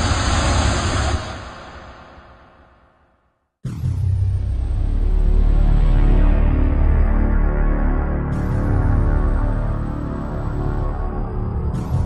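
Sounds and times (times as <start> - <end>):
rushing noise with deep rumble: 0.0 - 2.6.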